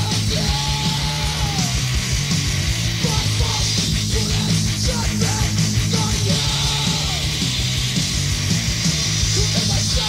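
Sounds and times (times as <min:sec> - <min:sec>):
punk band playing fast: 0:00.0 - 0:10.0.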